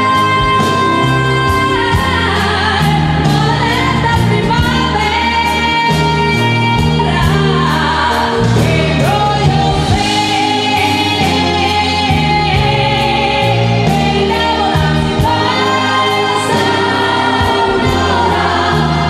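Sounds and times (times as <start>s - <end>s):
backing vocals: 0.0s - 19.0s
bass: 0.0s - 19.0s
drums keeping a steady beat: 0.0s - 19.0s
keyboards: 0.0s - 19.0s
woman singing lead vocals: 0.0s - 19.0s.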